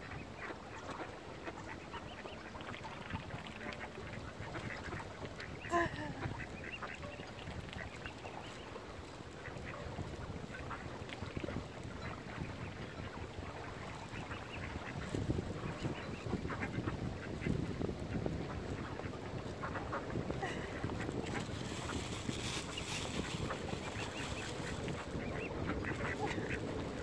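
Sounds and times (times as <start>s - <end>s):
ducks quacking: 0.0s - 8.7s, 9.4s - 27.0s.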